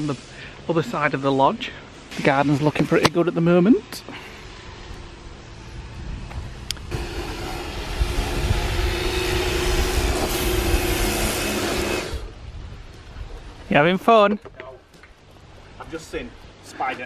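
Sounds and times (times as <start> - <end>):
pressure washer running: 6.9 - 12.4.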